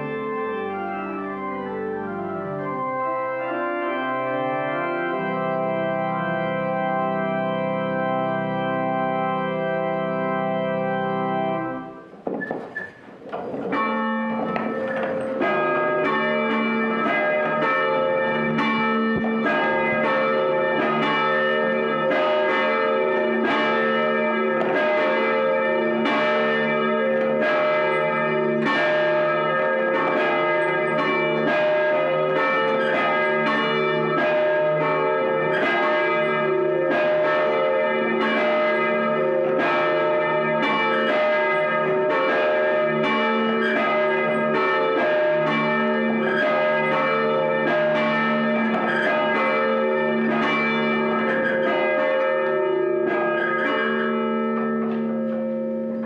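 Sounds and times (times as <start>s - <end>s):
church bells ringing: 0.0s - 56.0s.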